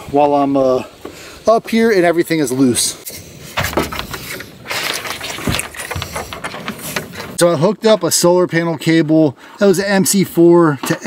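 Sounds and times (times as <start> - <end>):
metal hardware clicks and rattles: 3.6 - 7.5.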